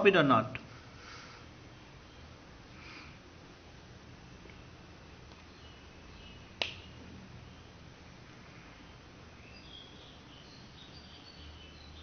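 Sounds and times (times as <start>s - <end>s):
room hiss and hum: 0.0s - 12.0s.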